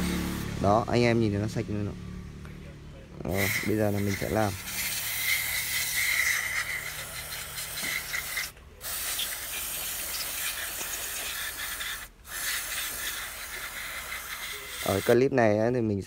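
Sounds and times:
aerosol can spraying: 0:03.3 - 0:15.2.

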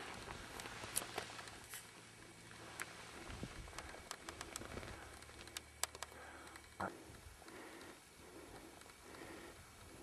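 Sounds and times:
wind buffeting microphone: 0:03.2 - 0:04.0
light clicks: 0:03.7 - 0:09.3.

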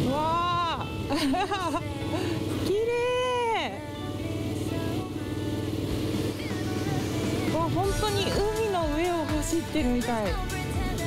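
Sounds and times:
background music: 0:00.0 - 0:11.0
motorcycle engine hum: 0:00.0 - 0:11.0.

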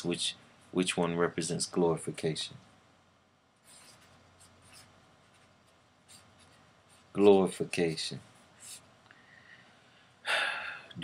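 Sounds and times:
pen scratching on paper: 0:03.6 - 0:07.1.

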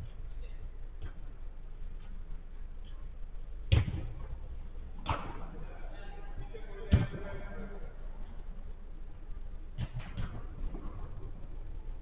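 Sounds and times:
low rumble: 0:00.0 - 0:12.0
football kick thud: 0:03.7 - 0:04.4.

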